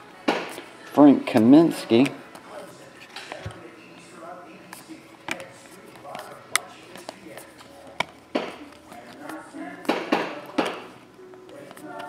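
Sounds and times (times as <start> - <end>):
cards snapping and clicking: 1.9 - 2.4, 4.7 - 12.0.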